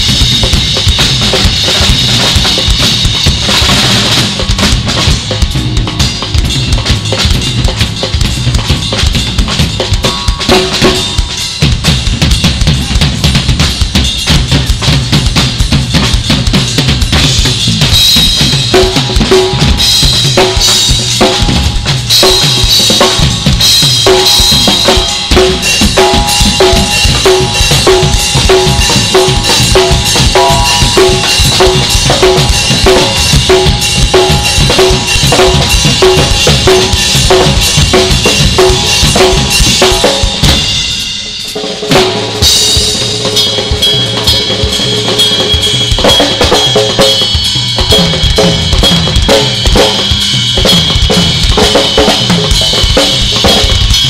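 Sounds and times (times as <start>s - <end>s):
drum kit solo: 0.0s - 54.0s.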